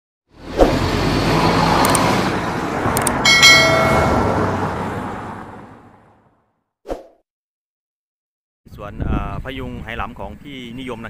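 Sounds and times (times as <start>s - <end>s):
short clicks: 1.8s - 2.1s, 3.0s - 3.2s
bright bell chime: 3.2s - 4.5s.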